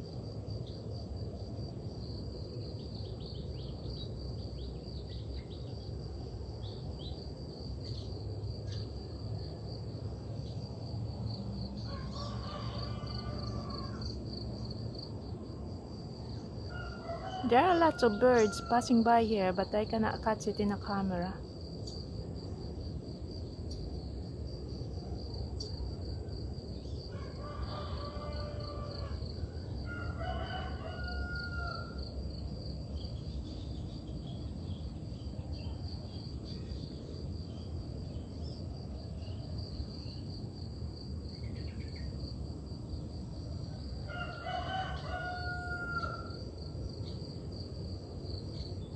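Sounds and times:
high insect drone: 0.0 - 48.9
rooster crowing: 11.8 - 14.2, 16.7 - 19.0, 27.1 - 32.1, 43.8 - 46.5.

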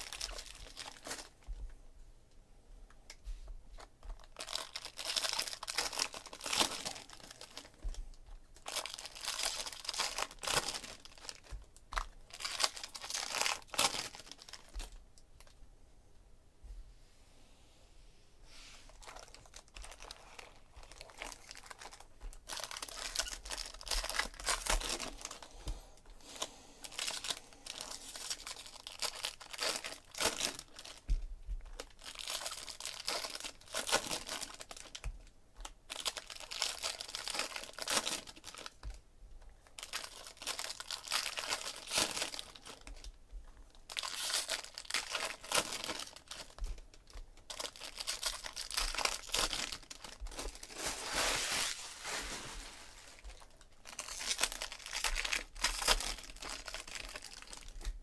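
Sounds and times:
foil wrappers tearing and crinkling: 0.0 - 1.4, 4.2 - 7.9, 8.6 - 14.8, 19.0 - 25.5, 26.8 - 35.1, 35.9 - 38.9, 39.7 - 43.2, 43.9 - 58.0.

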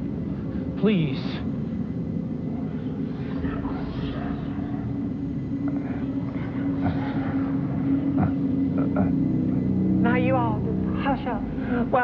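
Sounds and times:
low droning hum: 0.0 - 12.0.

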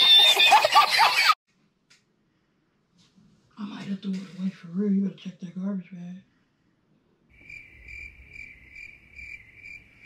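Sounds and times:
crickets chirping: 7.3 - 10.0.

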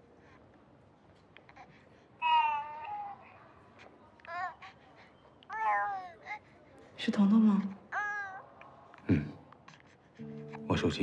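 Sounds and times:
baby cooing: 2.2 - 3.3, 4.2 - 4.7, 5.5 - 6.4.

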